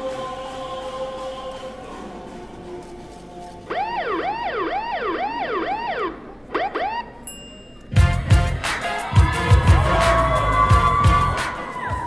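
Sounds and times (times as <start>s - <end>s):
police siren wail: 3.7s - 7.2s
dance music with heavy beat: 8.0s - 12.0s.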